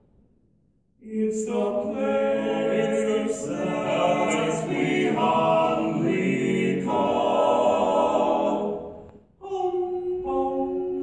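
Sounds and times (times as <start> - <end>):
ensemble singing in harmony: 1.0 - 11.0.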